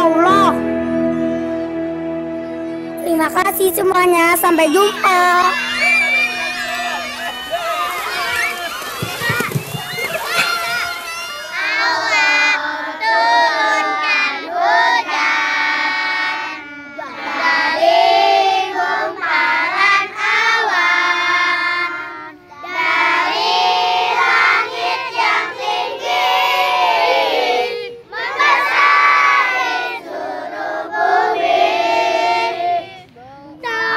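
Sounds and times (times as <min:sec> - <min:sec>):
children singing: 0:04.9 - 0:33.0.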